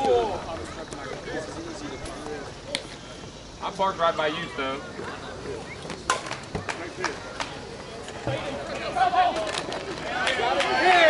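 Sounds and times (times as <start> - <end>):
people shouting: 8.3 - 11.0.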